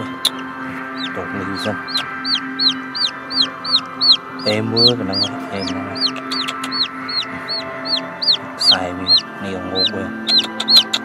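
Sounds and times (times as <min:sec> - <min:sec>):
chick peeping: 0:00.0 - 0:11.0.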